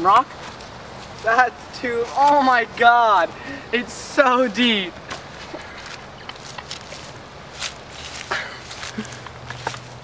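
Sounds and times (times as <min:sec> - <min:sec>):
crunches and rustles in mud: 0:05.3 - 0:10.0.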